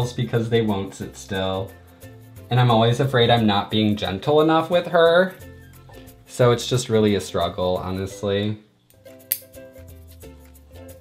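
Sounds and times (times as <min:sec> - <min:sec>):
background music held notes: 0:00.0 - 0:11.0
nail clippers click: 0:09.3 - 0:09.5.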